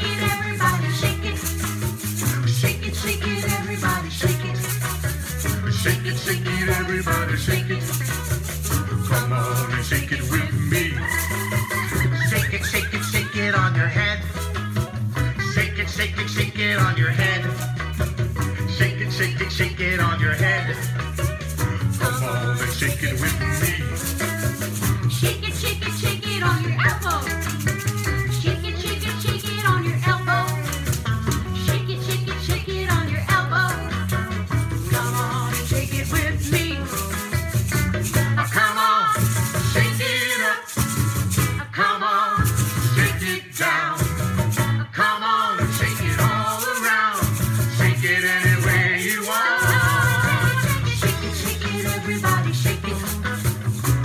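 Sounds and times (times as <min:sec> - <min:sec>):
plastic bottle shakers rattling: 0:00.0 - 0:54.0
upbeat children's song: 0:00.0 - 0:54.0.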